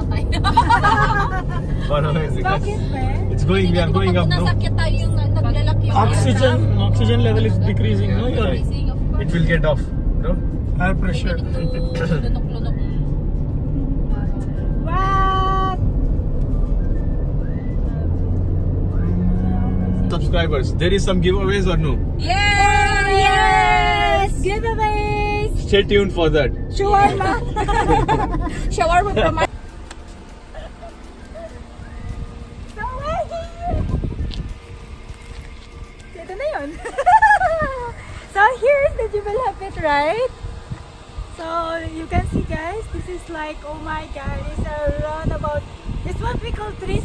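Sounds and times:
engine and tyre rumble: 0.0s - 47.0s
wind rumble on microphone: 31.2s - 47.0s
woman squealing with laughter: 36.8s - 38.0s.

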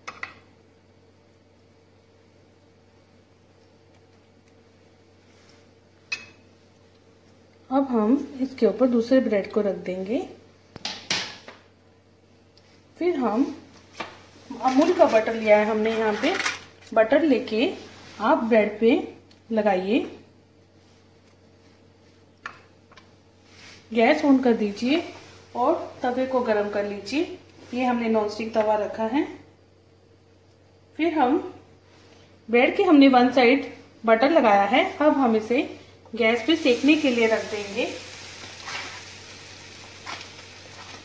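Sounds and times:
sandwich sizzling in a pan: 36.3s - 41.0s.

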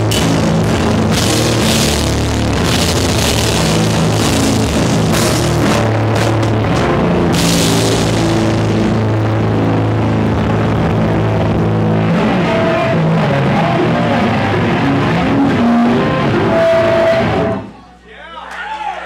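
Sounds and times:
live heavy rock band: 0.0s - 17.8s.

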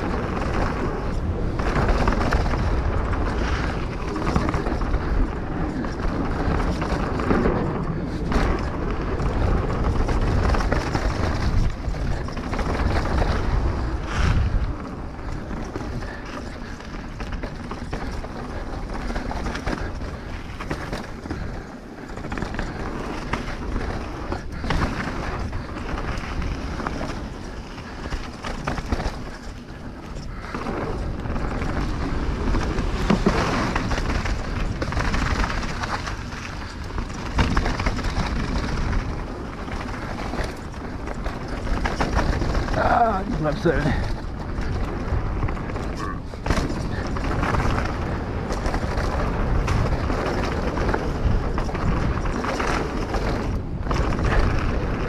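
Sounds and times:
bike knocking and rattling: 0.0s - 55.0s
bike tyres rolling over soil: 0.0s - 55.0s.

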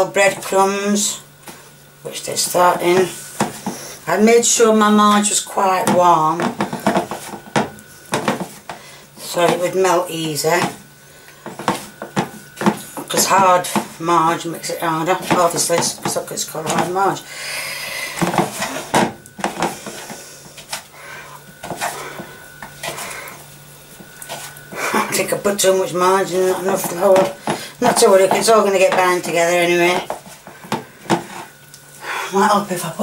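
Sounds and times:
crumbly mixture rustling: 0.0s - 17.3s, 18.1s - 32.0s.

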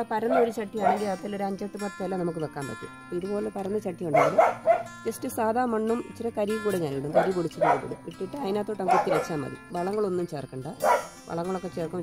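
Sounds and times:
person talking: 0.0s - 4.5s, 5.1s - 12.0s
faint background music: 0.0s - 12.0s.

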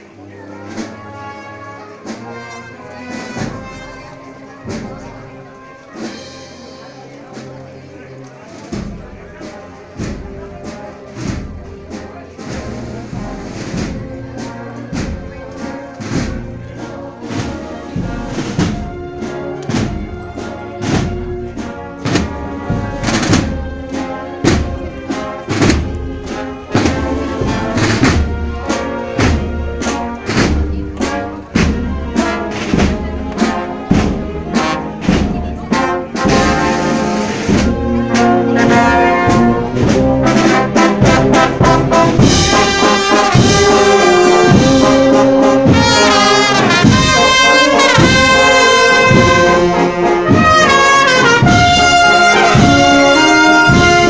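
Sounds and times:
brass playing a march: 0.0s - 54.0s
steady drum beat: 2.0s - 7.6s, 8.2s - 54.0s.

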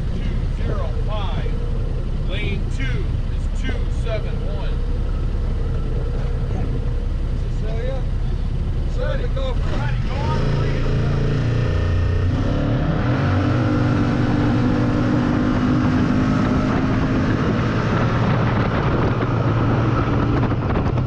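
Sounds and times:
voices: 0.0s - 11.3s
engine idling and revving: 0.0s - 21.0s.

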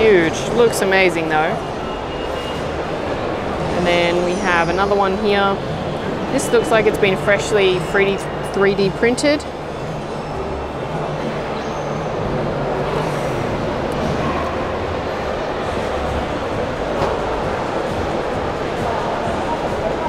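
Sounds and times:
murmur of many voices: 0.0s - 20.0s
music playing: 0.0s - 20.0s.

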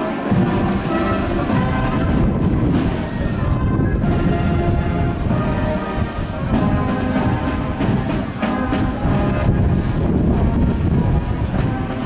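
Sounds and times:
drum strikes: 0.0s - 3.2s, 6.2s - 12.0s
brass band playing a march: 0.0s - 12.0s
heavy low rumble: 0.0s - 12.0s.

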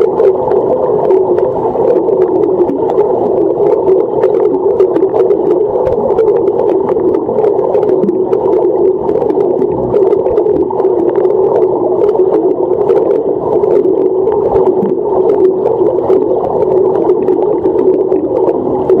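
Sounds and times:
muffled underwater rush: 0.0s - 19.0s
underwater clicks and bubble pops: 0.0s - 19.0s.

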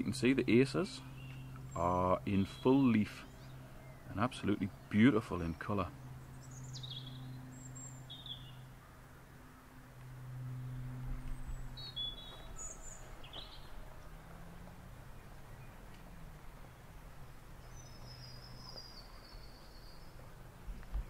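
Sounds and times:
birds chirping: 0.0s - 21.0s.

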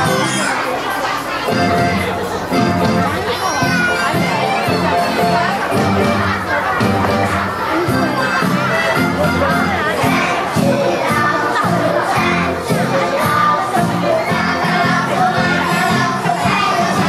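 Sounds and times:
children shouting and cheering: 0.0s - 17.0s
dance music: 1.6s - 17.0s.

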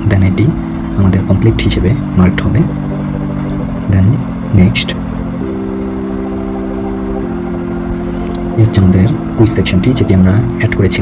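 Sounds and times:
low engine-like hum: 0.0s - 11.0s.

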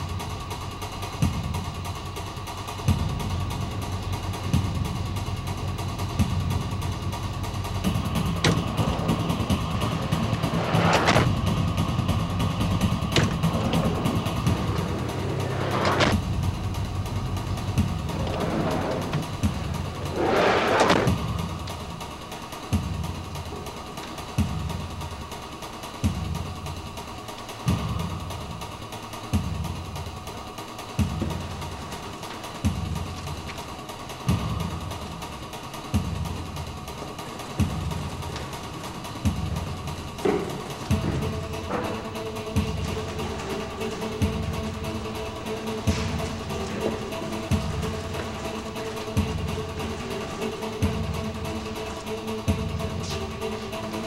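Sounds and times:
slow low beat music: 0.0s - 54.0s
vehicle engine idling: 0.0s - 54.0s.

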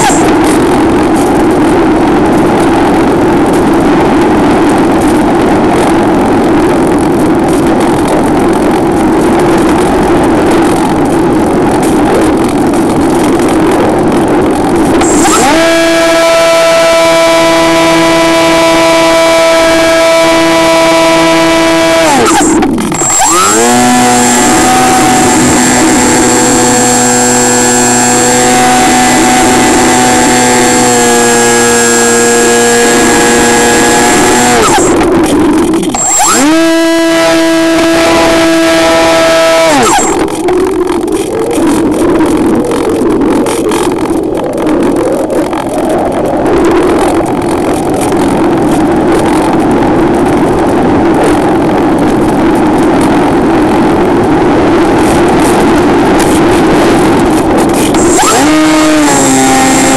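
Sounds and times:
model plane motor whine: 0.0s - 1.7s, 14.6s - 46.0s, 51.3s - 59.9s
wind rush: 0.0s - 59.9s.

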